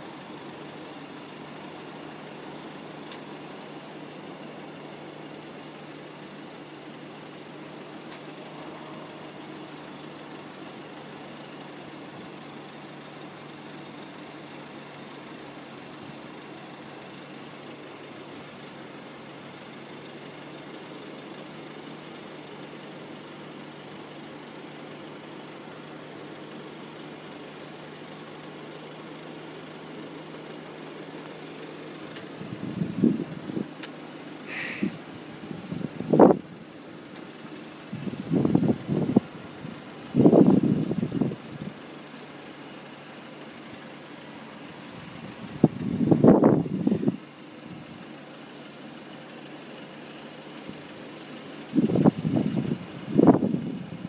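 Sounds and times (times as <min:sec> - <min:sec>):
car engines idling: 0:00.0 - 0:54.0.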